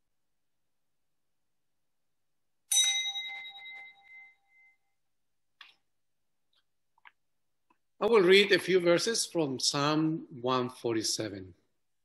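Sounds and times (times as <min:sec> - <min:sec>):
small bell ding: 0:02.7 - 0:05.0.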